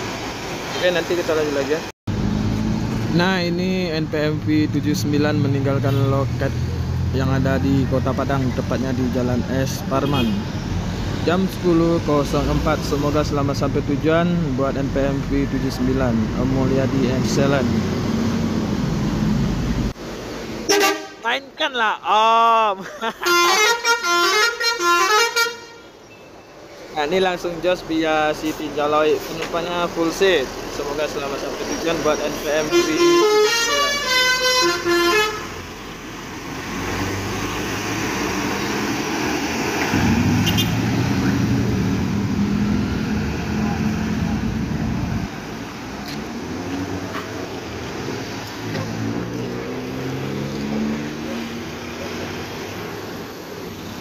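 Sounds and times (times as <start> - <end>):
bus horn blast: 10.0 - 10.5, 20.6 - 21.2, 23.2 - 26.0, 32.6 - 35.6, 40.4 - 40.9
diesel bus engine pulling away: 35.5 - 54.0.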